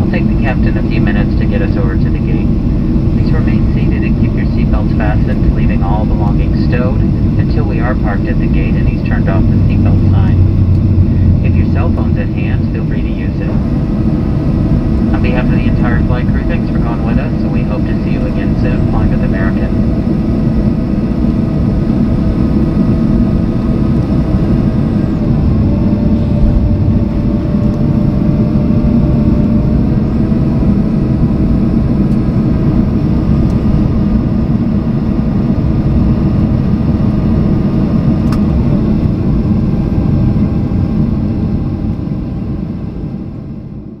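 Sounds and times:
aircraft cabin engine rumble: 0.0 - 44.0.

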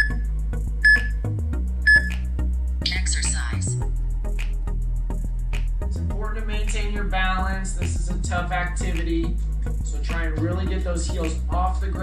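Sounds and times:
short high electronic beeps: 0.0 - 0.2, 0.8 - 1.2, 1.9 - 2.2
background music with bass line: 0.0 - 12.0.

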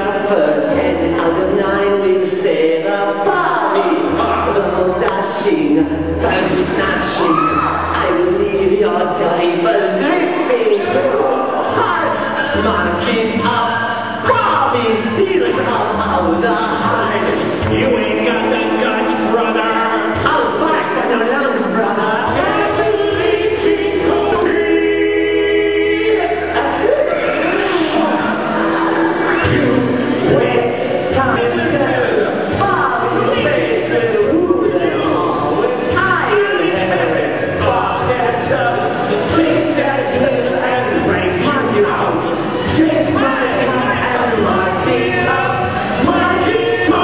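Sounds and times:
rock song over sound system: 0.0 - 47.0
voices singing: 0.0 - 47.0.

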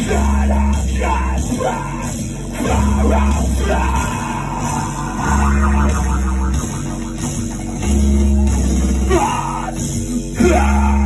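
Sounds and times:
live rock band playing: 4.8 - 8.8
low bass note: 4.9 - 8.3.

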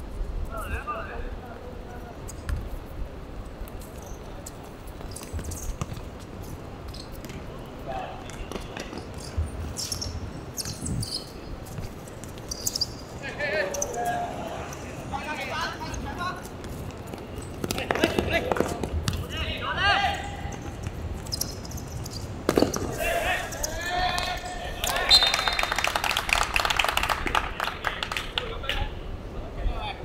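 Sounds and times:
players shouting: 19.2 - 20.6, 22.9 - 25.8
ball kicked thuds: 22.5 - 23.0.

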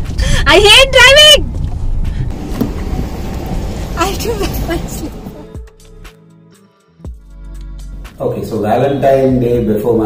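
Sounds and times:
car engine rumble: 0.0 - 6.1
road noise: 0.0 - 6.2.

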